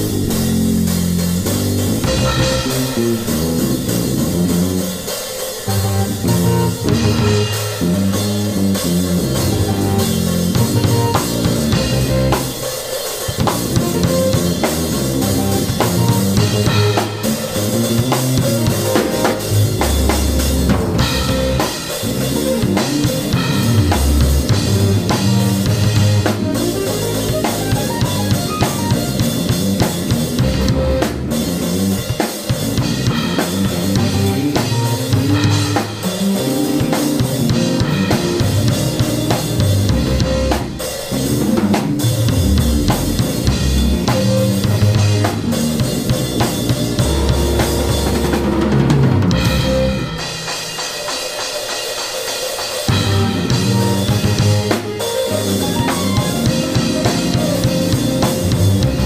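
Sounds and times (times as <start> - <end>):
electric bass line: 0.0 - 50.3, 52.9 - 59.0
keyboard chords: 0.0 - 50.8, 52.9 - 59.0
drum kit playing: 0.0 - 59.0.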